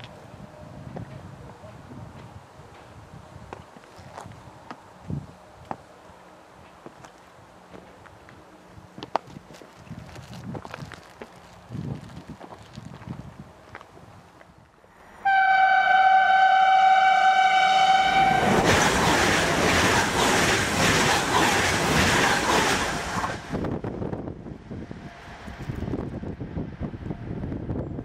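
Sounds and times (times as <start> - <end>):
train passing at speed: 13.1 - 28.0
train horn: 15.2 - 18.6.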